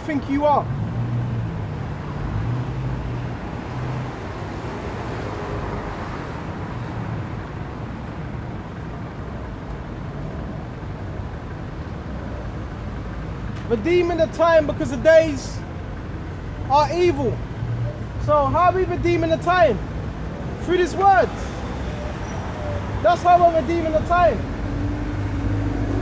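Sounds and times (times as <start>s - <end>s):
road noise: 0.0s - 26.0s.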